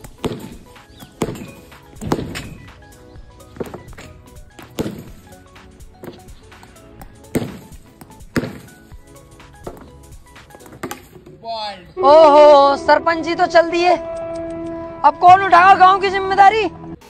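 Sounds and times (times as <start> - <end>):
plastic bat striking tennis ball: 0.0 - 2.7, 3.5 - 5.2, 6.0 - 8.8, 9.6 - 11.4.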